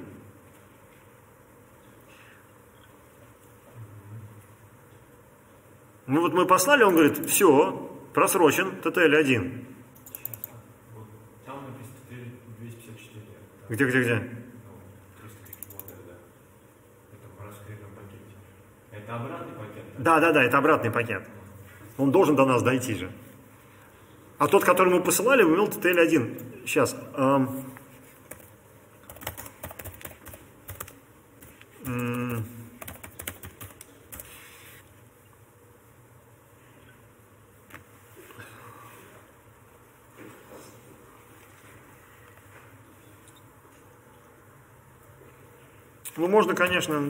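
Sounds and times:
computer keyboard clicks: 0:10.0 - 0:10.6, 0:15.4 - 0:16.0, 0:29.1 - 0:31.0, 0:32.8 - 0:34.3
man muttering: 0:31.8 - 0:32.8.

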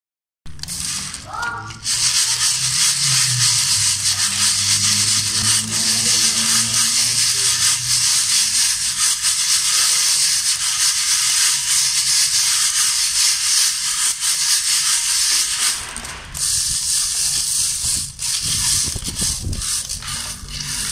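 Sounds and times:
beans rattling on metal sieve: 0:00.6 - 0:20.9.

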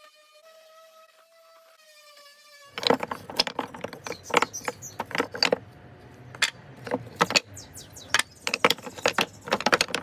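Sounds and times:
wooden blocks clattering together: 0:02.8 - 0:10.0.

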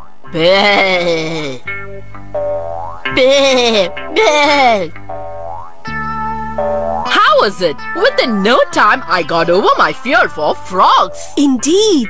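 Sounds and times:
cartoon background music: 0:00.0 - 0:12.0
comic boing sound effects: 0:00.3 - 0:08.3.

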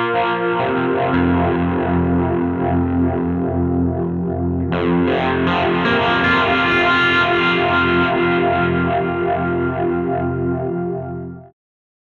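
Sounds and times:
overdriven electric guitar chord ringing: 0:00.0 - 0:11.5.

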